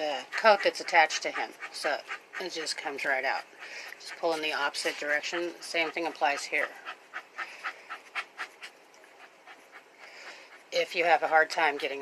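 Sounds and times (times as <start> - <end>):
dog panting: 0.0 - 12.0.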